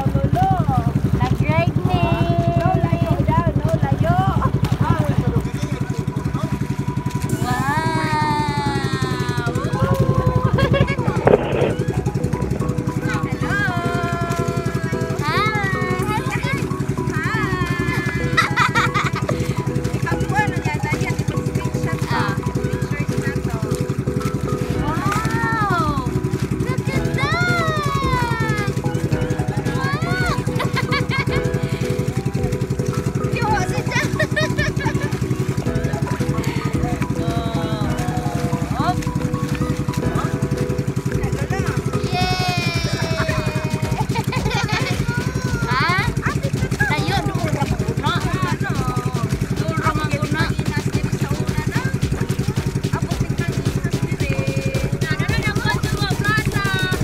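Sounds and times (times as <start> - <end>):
boat engine running: 0.0 - 57.0
voices: 0.0 - 57.0.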